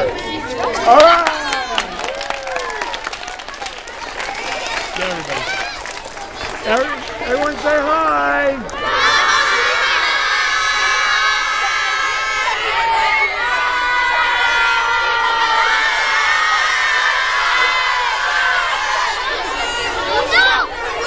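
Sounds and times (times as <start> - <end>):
children shouting and cheering: 0.0 - 7.3, 8.6 - 21.0.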